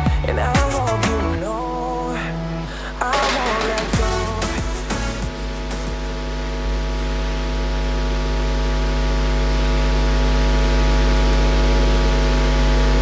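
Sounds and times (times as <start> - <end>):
electronic hum with hiss: 1.4 - 13.0.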